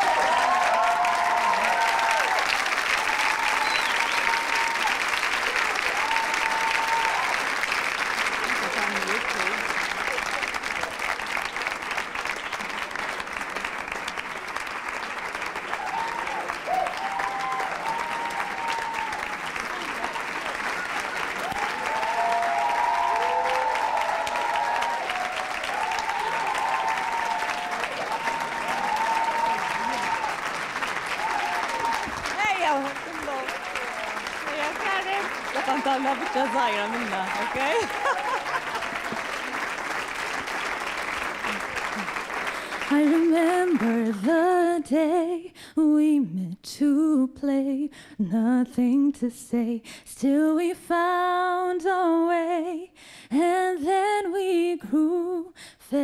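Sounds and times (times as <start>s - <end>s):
small group clapping: 0.0s - 44.5s.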